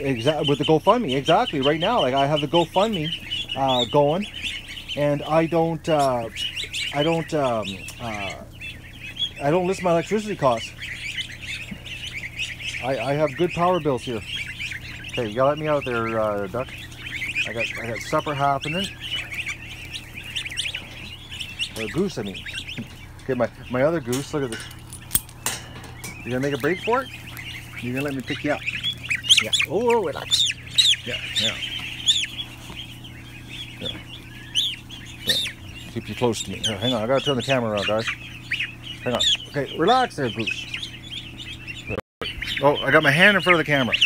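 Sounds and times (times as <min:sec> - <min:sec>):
ducklings peeping: 0:00.0 - 0:44.0
steady low hum: 0:00.0 - 0:44.0.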